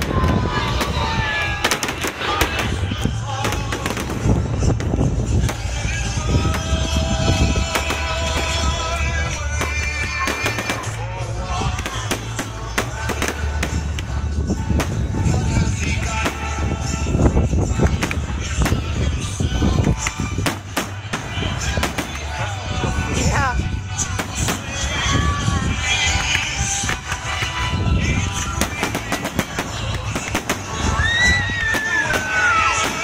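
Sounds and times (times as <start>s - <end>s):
continuous low rumble: 0.0s - 33.0s
fireworks bangs: 0.0s - 33.0s
loud music with bass: 0.0s - 33.0s.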